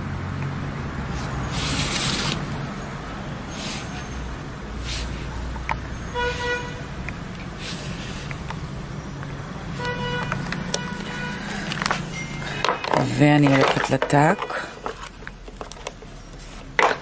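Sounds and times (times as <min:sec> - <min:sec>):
short horn-like toots: 0:06.1 - 0:06.8.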